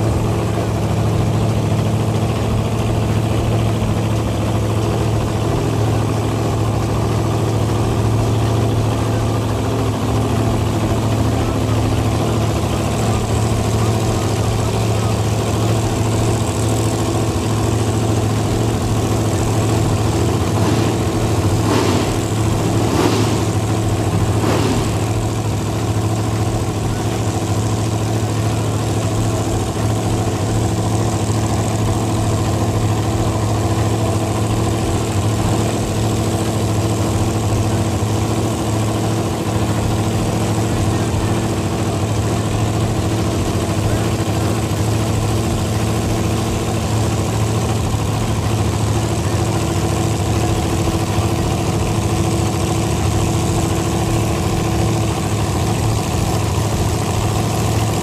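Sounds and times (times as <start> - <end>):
racing car engine idling loudly: 0.0 - 58.0.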